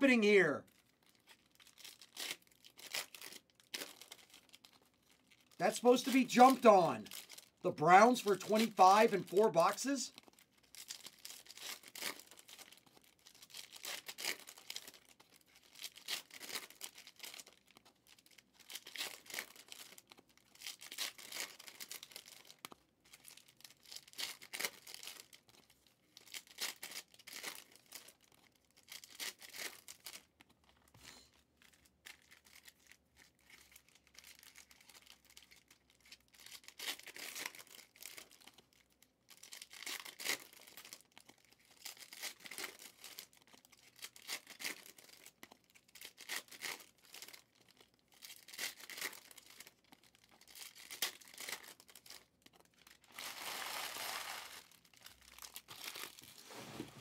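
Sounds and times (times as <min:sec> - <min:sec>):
trading cards rustling: 0:05.6 - 0:07.1, 0:07.7 - 0:10.0, 0:53.1 - 0:57.0.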